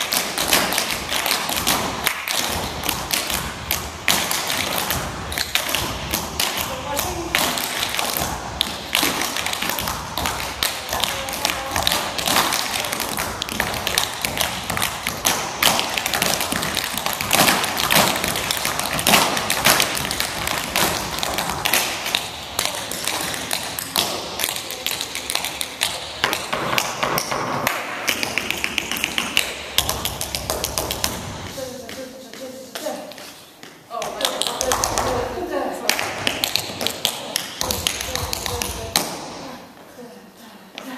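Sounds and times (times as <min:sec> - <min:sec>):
tap shoes on wooden stage: 0:00.0 - 0:39.4.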